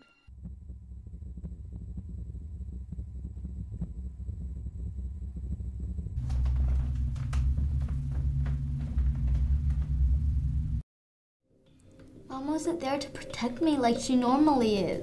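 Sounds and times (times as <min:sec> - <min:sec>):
low rumbling drone: 0:00.3 - 0:10.8.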